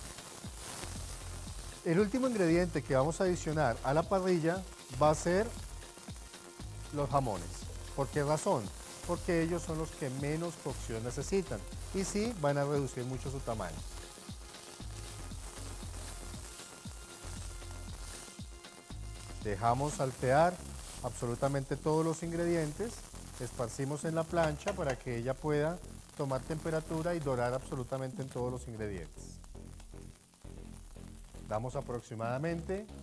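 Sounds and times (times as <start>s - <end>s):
food sizzling in oil: 0.0s - 33.0s.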